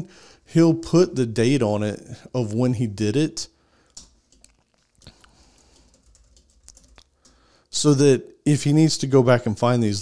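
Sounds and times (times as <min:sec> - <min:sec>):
typing on computer keyboard: 0:03.9 - 0:07.4.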